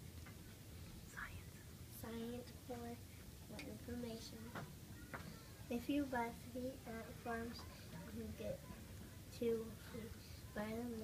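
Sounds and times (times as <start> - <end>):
low room hum: 0.0 - 11.0
faint whispering: 0.8 - 3.2.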